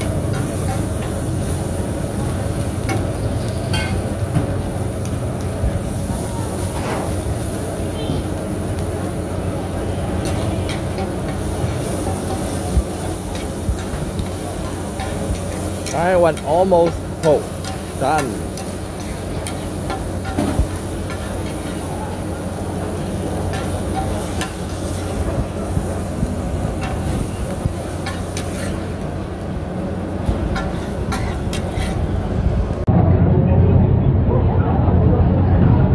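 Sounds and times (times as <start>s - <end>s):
omelette frying in a wok: 0.0s - 32.8s
stove burner rumble: 0.0s - 35.9s
muffled low rumble: 31.9s - 35.9s.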